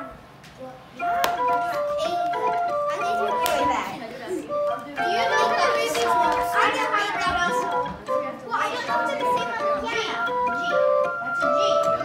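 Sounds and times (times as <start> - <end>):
wooden pipe organ notes: 1.0 - 12.0.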